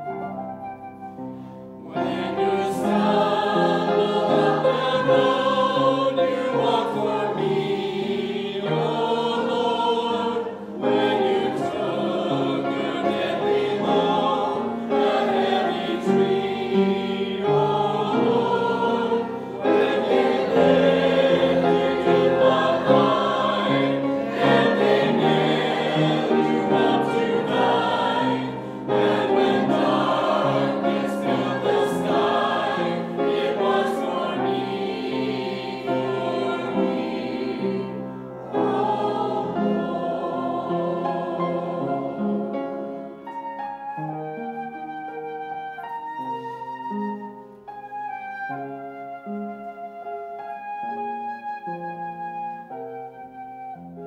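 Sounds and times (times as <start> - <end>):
piano accompaniment: 0.0 - 54.0
choir singing a hymn: 1.8 - 43.8.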